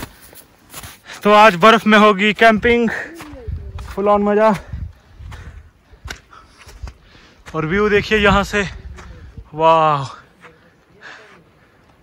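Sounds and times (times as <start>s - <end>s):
footsteps on wet grass: 0.0s - 12.0s.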